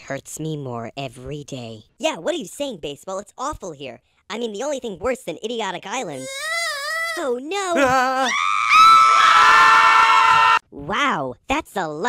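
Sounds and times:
cartoon voices screaming: 7.8 - 10.6.

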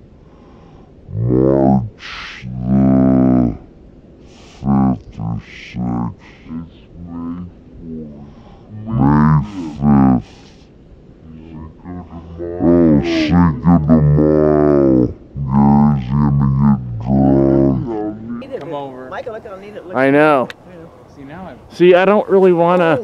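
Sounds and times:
man making drawn-out vocal sounds: 1.1 - 3.6, 4.4 - 10.6, 11.2 - 18.6.

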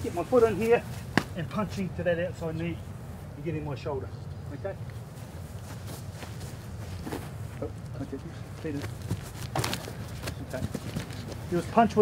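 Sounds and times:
low background hum: 0.0 - 12.0
footsteps on grass: 4.8 - 11.8.

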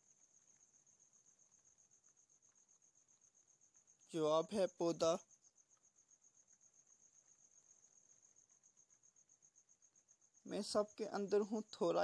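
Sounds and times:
faint high-pitched pulsing chirp: 0.0 - 12.0.

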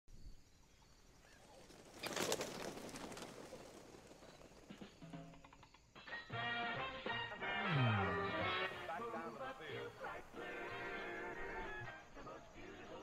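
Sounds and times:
faint outdoor background: 0.1 - 13.0
bird wings fluttering: 0.8 - 5.8.

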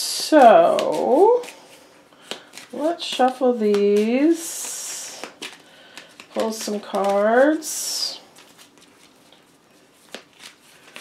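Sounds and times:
cards shuffling: 0.4 - 11.0.

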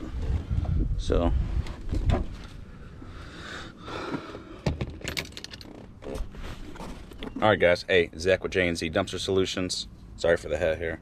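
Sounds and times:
light clicks and rattles: 4.6 - 7.4.

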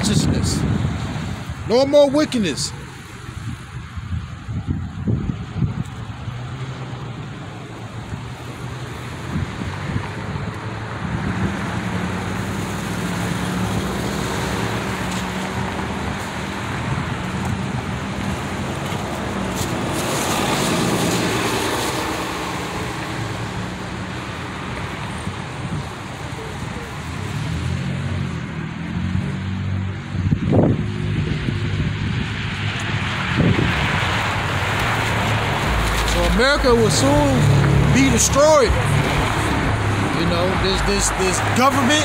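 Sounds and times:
cars driving past: 0.0 - 42.0.

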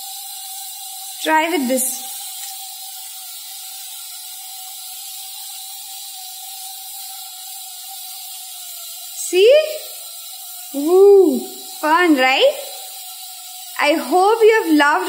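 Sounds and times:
pressure cooker steam whistling: 0.0 - 15.0.

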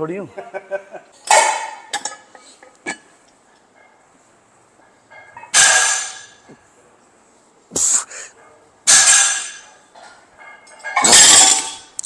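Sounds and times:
forceful hissing exhalations: 7.7 - 8.4.

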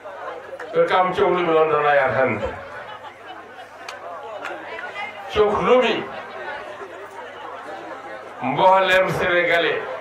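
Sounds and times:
background chatter: 0.0 - 10.0
person speaking over loudspeaker: 8.4 - 9.9.

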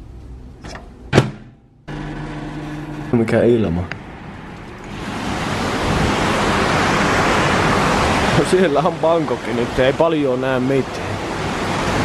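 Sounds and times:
sharp knock: 1.1 - 1.6
low machine hum: 1.6 - 8.0.

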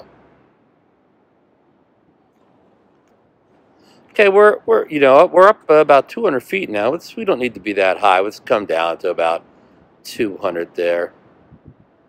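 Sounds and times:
faint microphone hiss: 0.0 - 12.0.

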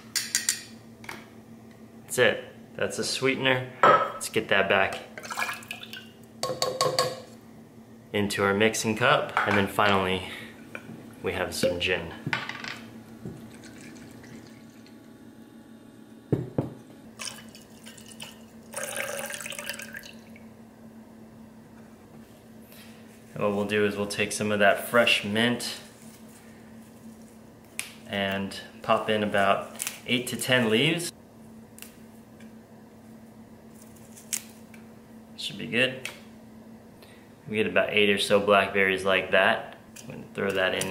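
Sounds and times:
liquid pouring and splashing: 5.2 - 6.1, 13.5 - 15.0, 17.2 - 20.4
leaves snapping and rustling: 29.7 - 30.0, 33.7 - 34.6.

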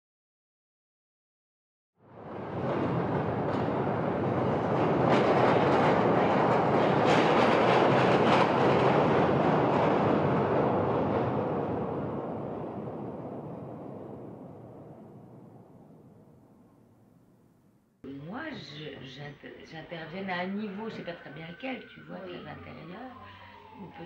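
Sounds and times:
subway train passing: 2.0 - 16.8, 18.1 - 24.0.

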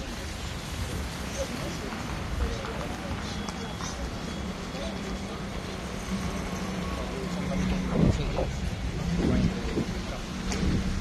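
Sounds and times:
cars driving past: 0.0 - 11.0
voices: 0.0 - 11.0.

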